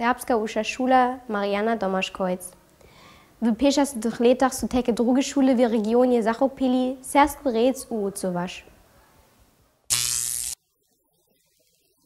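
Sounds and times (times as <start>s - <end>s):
loud buzzing tone: 9.9s - 10.6s.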